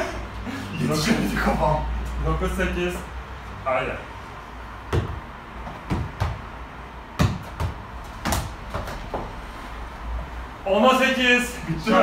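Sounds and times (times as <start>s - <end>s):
tennis ball thumps on gym floor: 4.9s - 6.5s, 7.2s - 9.3s.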